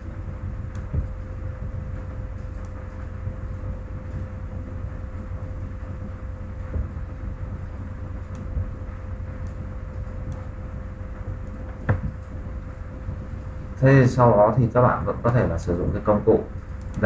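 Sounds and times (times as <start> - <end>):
faint hum: 0.0 - 17.0
low background rumble: 0.0 - 17.0.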